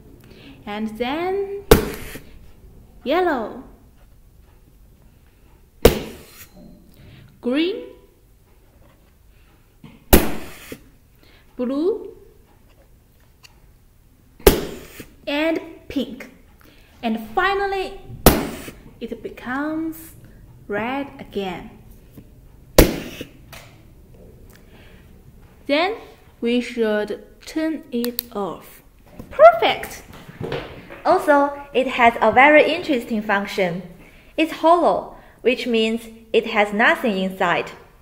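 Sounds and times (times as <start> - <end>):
low room noise: 0.0 - 38.0.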